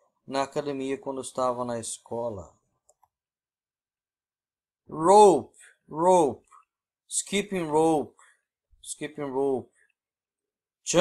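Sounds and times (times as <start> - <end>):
computer mouse clicks: 2.8 - 3.2
man's voice: 4.9 - 6.5.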